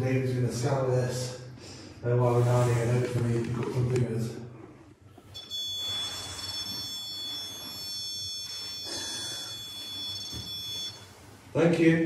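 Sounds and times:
electronic buzzer tone: 5.3s - 11.2s.

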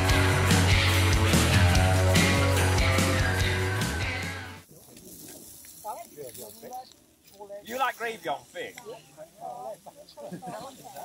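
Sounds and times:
skewers sizzling over charcoal: 4.6s - 11.0s.

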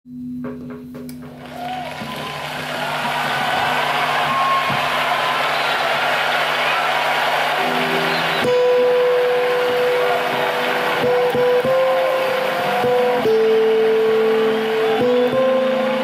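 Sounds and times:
acoustic guitar melody: 7.1s - 16.0s.

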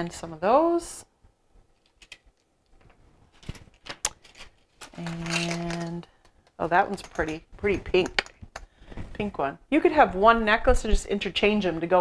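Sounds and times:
clicks and rustling of plastic packaging: 1.8s - 6.4s.

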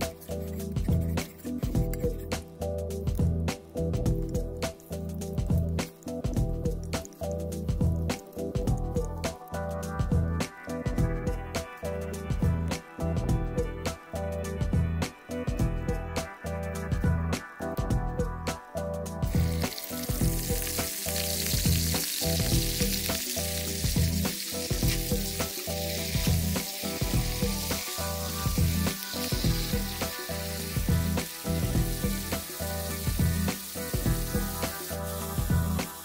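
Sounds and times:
meat sizzling in hot oil: 0.0s - 10.3s, 19.3s - 36.0s
background music with beat: 0.0s - 36.0s.

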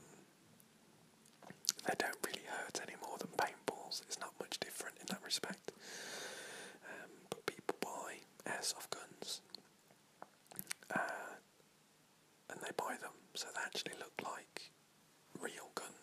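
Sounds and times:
man whispering: 1.7s - 5.8s, 6.8s - 9.6s, 10.6s - 11.5s, 12.5s - 16.0s.

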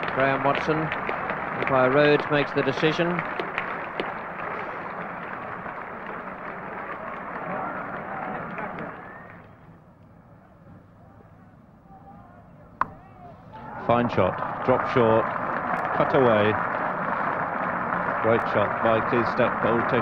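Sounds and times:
crowd chattering: 0.0s - 20.0s
bat hitting ball: 12.8s - 13.3s.

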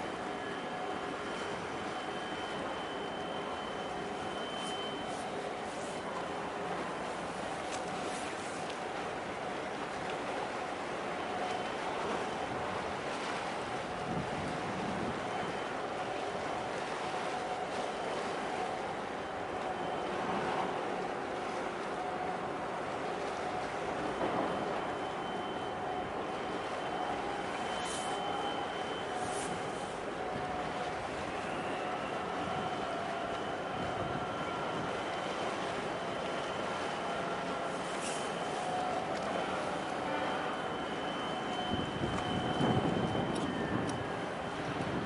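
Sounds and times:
faint held tones: 0.0s - 8.8s, 23.3s - 45.0s
distant engines and machinery hum: 0.0s - 45.0s.

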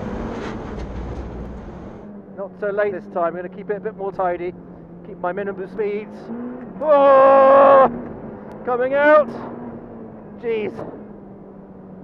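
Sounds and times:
race car engine under power: 5.8s - 11.9s.

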